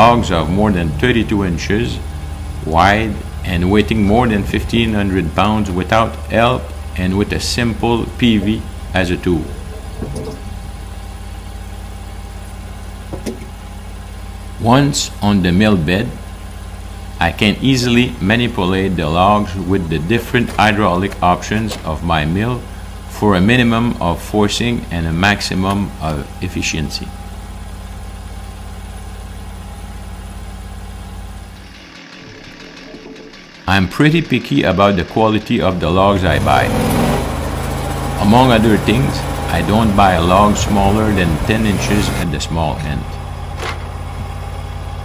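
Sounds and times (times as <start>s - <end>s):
sawmill engine idling: 0.0s - 45.0s.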